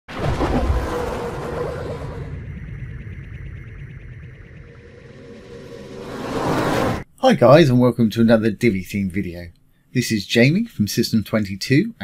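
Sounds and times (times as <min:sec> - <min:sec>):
whoosh: 0:00.1 - 0:07.1.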